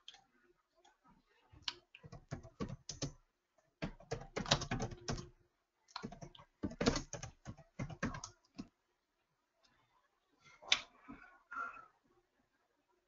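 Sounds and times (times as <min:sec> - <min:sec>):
computer keyboard typing: 0:02.0 - 0:03.2, 0:03.8 - 0:05.3, 0:06.0 - 0:08.4.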